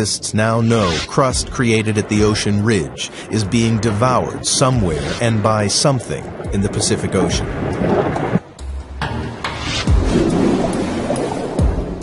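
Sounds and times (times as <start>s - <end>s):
rain-like hiss: 0.0s - 7.5s
deep thunder rumbling: 1.1s - 8.4s.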